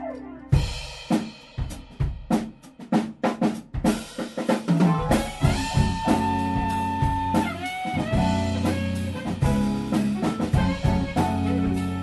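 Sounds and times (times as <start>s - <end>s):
drum kit playing a break: 0.0s - 12.0s.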